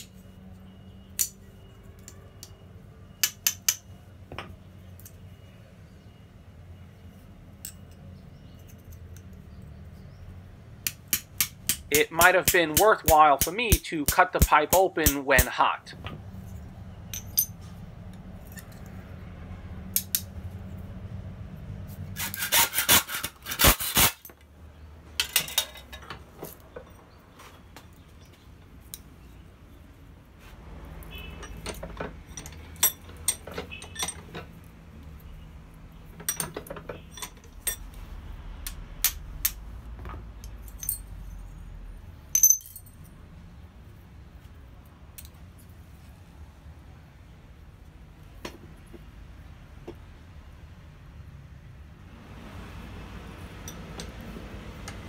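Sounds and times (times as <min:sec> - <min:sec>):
steel pieces clinking on anvil: 0:03.2 - 0:03.9, 0:17.1 - 0:17.6, 0:31.4 - 0:34.3, 0:36.2 - 0:37.9, 0:40.6 - 0:41.4, 0:42.3 - 0:43.0.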